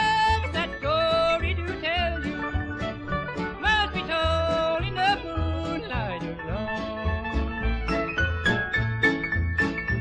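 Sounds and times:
bluegrass band music: 0.0s - 10.0s.

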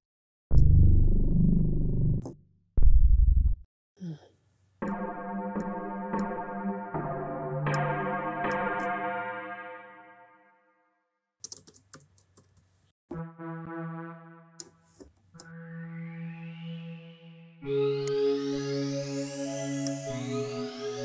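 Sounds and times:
sustained synth chords: 4.8s - 10.3s, 13.1s - 14.8s, 15.4s - 21.0s.

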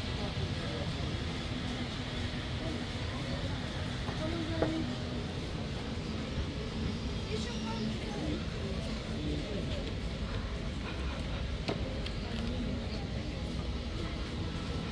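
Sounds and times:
chatter of passers-by: 0.0s - 14.9s.

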